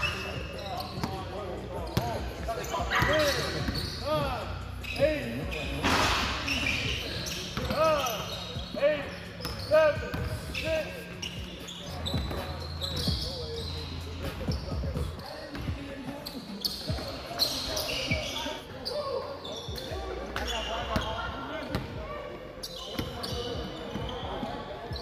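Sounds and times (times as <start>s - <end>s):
sneakers squeaking on hardwood: 0.0s - 25.0s.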